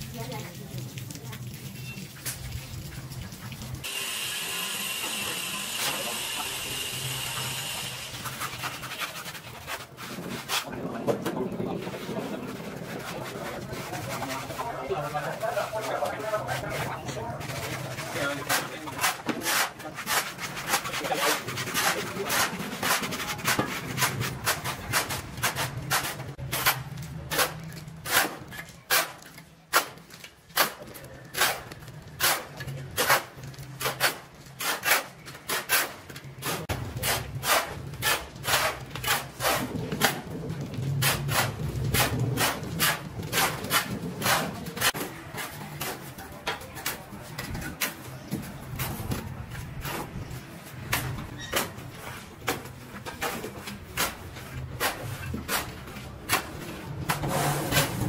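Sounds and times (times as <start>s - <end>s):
shovels scraping dry concrete mix: 3.8s - 58.0s.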